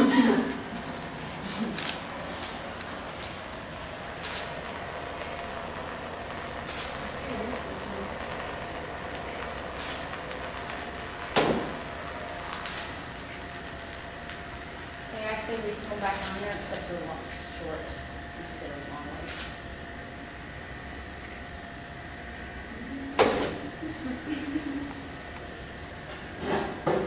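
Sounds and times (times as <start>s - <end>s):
machine humming and whining: 0.0s - 27.0s.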